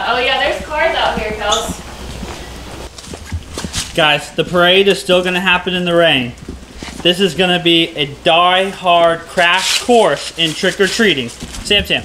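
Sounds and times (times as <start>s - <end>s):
footsteps on concrete floor: 1.0s - 4.6s.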